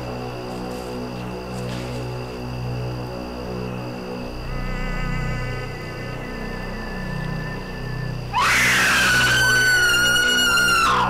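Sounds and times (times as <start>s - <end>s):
droning horror score: 0.0s - 11.0s
high-pitched scream: 8.3s - 11.0s.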